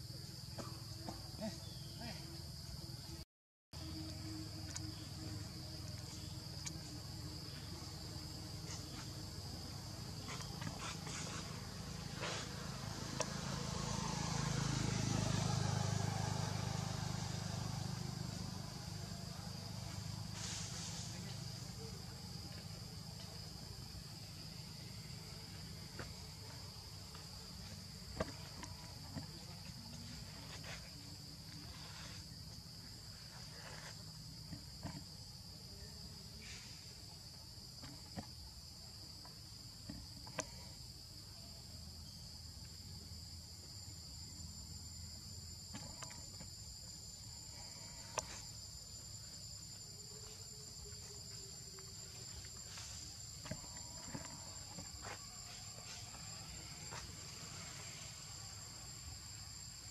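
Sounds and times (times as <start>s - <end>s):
high-pitched insect drone: 3.8s - 38.4s, 40.3s - 59.9s.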